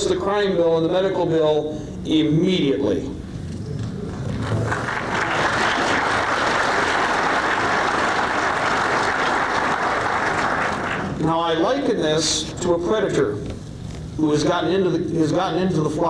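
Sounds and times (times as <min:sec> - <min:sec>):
audience applauding: 0:04.1 - 0:11.2.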